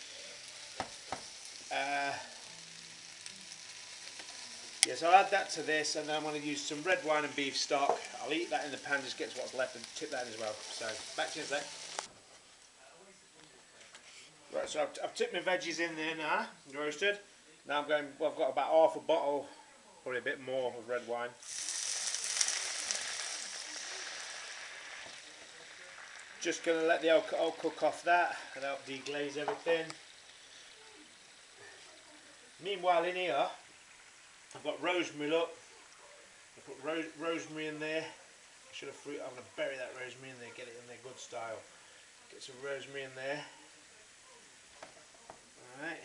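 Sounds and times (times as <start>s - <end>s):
vegetables sizzling in oil: 0.0s - 12.7s, 20.8s - 46.0s.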